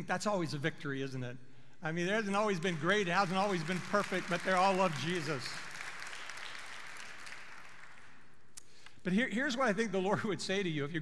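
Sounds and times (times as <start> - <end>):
crowd applause: 2.6 - 8.2.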